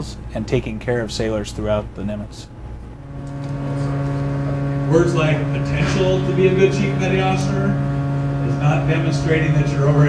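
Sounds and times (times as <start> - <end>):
low machinery hum: 0.0 - 10.0.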